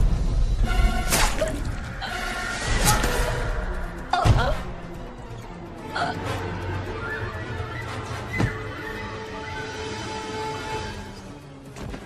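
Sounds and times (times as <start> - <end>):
suspense film score: 0.0 - 12.0.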